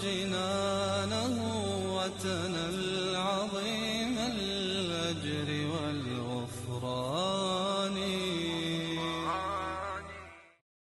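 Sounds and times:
slow chanted vocal melody: 0.0s - 10.6s.

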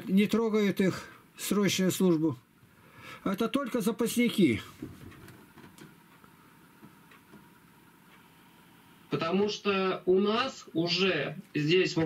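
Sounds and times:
soft ticks: 7.0s - 8.2s.

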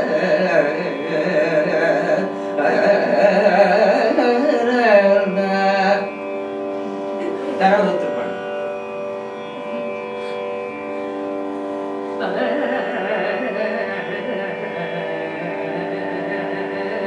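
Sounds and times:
tanpura drone: 0.0s - 17.0s
person singing: 12.2s - 17.0s.

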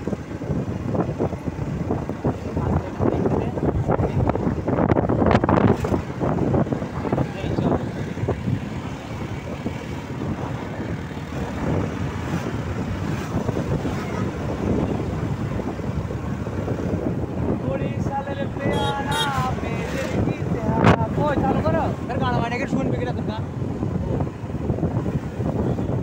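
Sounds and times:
vehicle engine and road noise: 0.0s - 26.0s
wind buffeting microphone: 0.0s - 26.0s.

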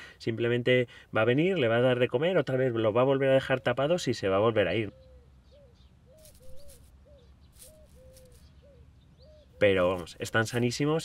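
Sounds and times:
faint bird chirps: 3.3s - 11.0s
bird calling low notes: 3.4s - 10.7s.

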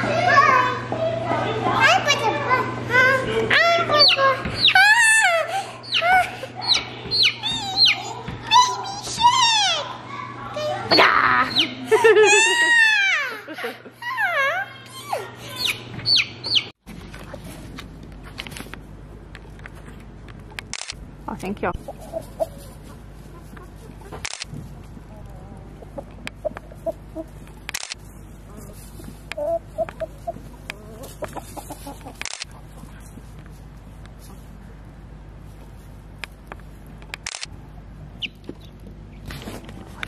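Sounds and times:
chick peeping: 3.9s - 8.7s, 15.5s - 16.7s, 21.9s - 24.2s, 29.4s - 33.0s.

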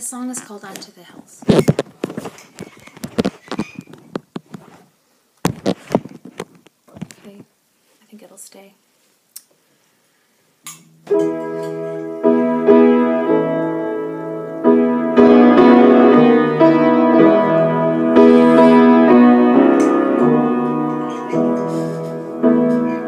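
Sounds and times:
slow piano chords: 11.1s - 23.0s.

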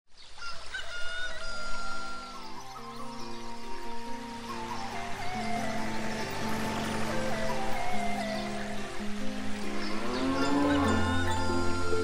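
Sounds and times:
rooster crowing: 0.4s - 2.4s
music: 1.3s - 12.0s.

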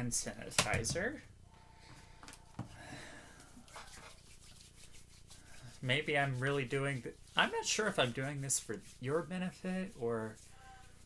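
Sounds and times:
hands rubbing: 3.4s - 11.0s.

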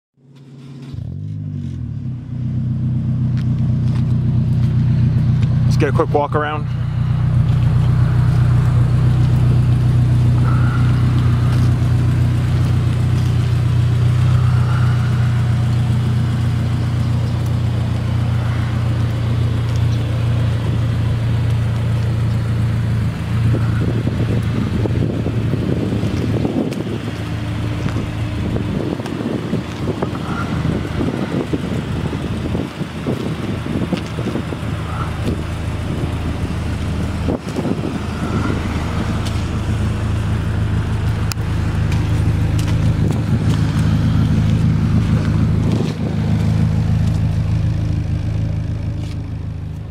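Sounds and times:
car engine idling: 0.2s - 49.9s.

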